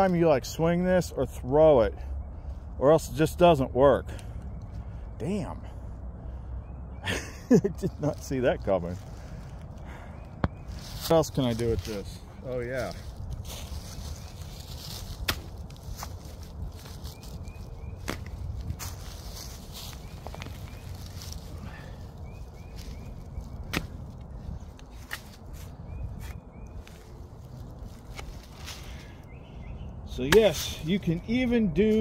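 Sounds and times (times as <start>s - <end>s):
shovel digging into soil: 15.1s - 16.2s, 30.3s - 30.9s
shovel chopping and scraping: 15.2s - 16.2s, 18.0s - 18.4s, 23.7s - 24.0s, 24.9s - 26.4s, 30.2s - 30.8s.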